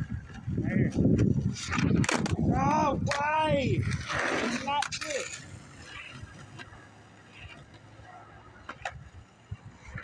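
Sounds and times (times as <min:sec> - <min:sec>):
skateboard wheels rolling on concrete: 0:00.0 - 0:10.0.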